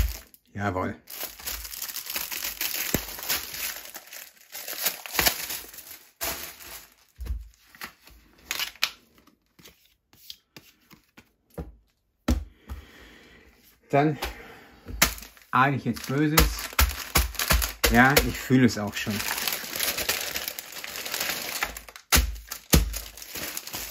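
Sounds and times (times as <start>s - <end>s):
plastic film crinkling and tearing: 0.0s - 0.4s, 1.0s - 9.6s, 15.0s - 23.9s.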